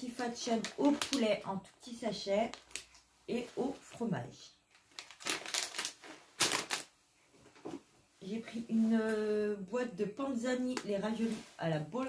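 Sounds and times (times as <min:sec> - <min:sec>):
plastic snack pouches crinkling: 0:00.5 - 0:01.4, 0:02.3 - 0:03.0, 0:04.7 - 0:06.9.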